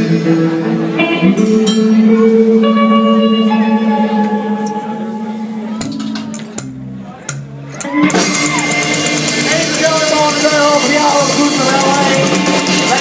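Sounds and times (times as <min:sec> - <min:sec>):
rockabilly band playing: 0:00.0 - 0:13.0.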